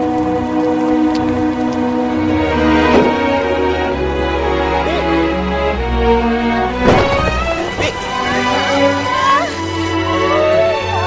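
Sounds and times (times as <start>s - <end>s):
background music: 0.0s - 11.0s
heavy rain on pavement: 0.0s - 11.0s.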